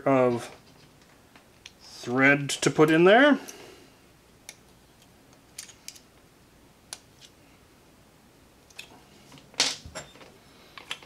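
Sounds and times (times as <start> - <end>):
small parts clicking: 5.6 - 6.1.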